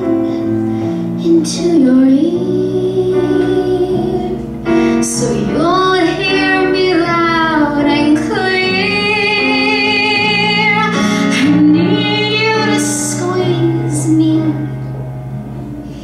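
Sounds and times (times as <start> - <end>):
instrumental accompaniment: 0.0 - 16.0
woman singing: 1.2 - 14.9.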